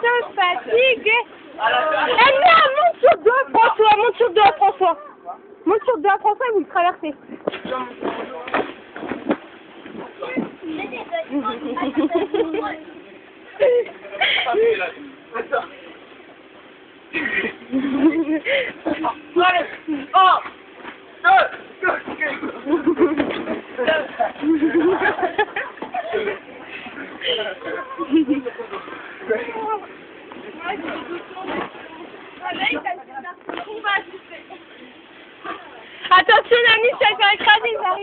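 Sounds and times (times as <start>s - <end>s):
people shouting and laughing: 0.0s - 6.3s, 11.0s - 15.0s, 21.2s - 31.2s
voices talking and calling: 0.0s - 38.0s.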